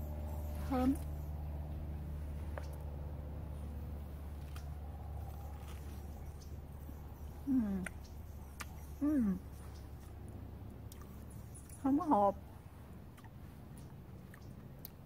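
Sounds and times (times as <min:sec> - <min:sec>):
low background hum: 0:00.0 - 0:15.0
mouth and peel ticks: 0:07.3 - 0:15.0
woman humming mmm: 0:07.4 - 0:08.0.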